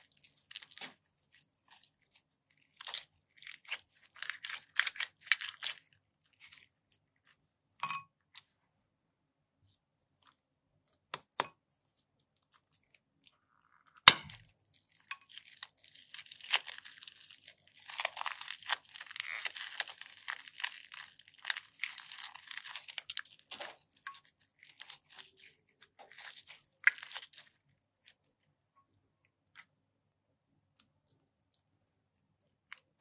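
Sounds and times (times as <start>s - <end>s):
sticky crunchy slime: 0.0s - 7.4s, 14.0s - 28.4s
plastic bag crinkling: 14.4s - 26.5s.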